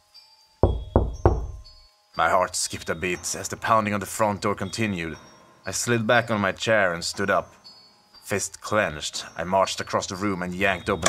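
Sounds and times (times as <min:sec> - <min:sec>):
fist pounding on door: 0:00.6 - 0:01.8.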